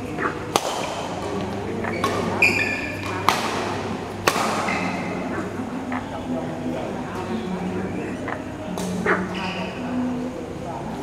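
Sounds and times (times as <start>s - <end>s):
rackets striking shuttlecock: 0.2s - 5.3s
shoe squeak on court: 1.9s - 3.1s.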